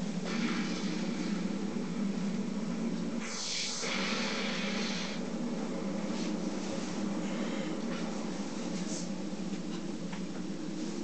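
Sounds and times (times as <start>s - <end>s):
steady low hum: 0.0s - 11.0s
hiss: 3.2s - 5.4s.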